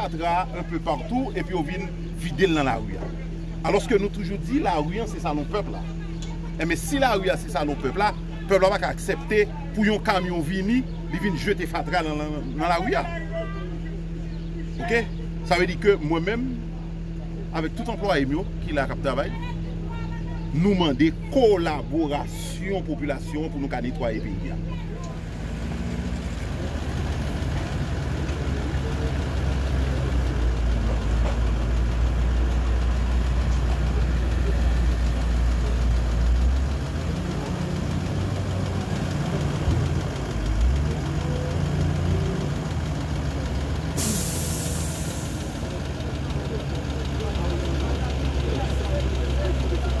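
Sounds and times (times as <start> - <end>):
vehicle engine running: 0.0 - 50.0.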